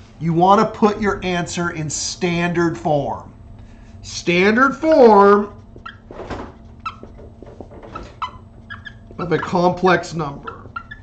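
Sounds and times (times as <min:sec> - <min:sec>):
marker squeaking on whiteboard: 0:05.0 - 0:11.0.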